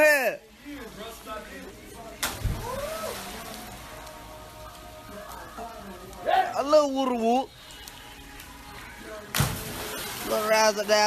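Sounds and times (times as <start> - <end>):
faint background music: 0.0 - 11.0
water splashing in a pool: 0.6 - 6.2, 7.2 - 11.0.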